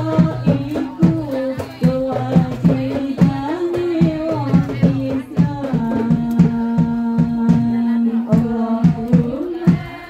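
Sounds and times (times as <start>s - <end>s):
frame drums beating: 0.0s - 10.0s
group singing in unison: 0.0s - 10.0s.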